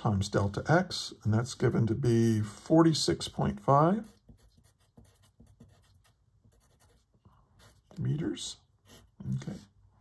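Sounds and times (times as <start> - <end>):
pencil scratching on paper: 3.4 - 8.0, 8.8 - 9.7.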